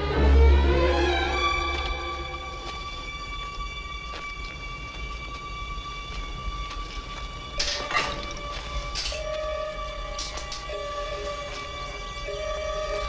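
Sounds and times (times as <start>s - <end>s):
low rumble: 0.0s - 13.0s
tense film score held tones: 0.0s - 13.0s.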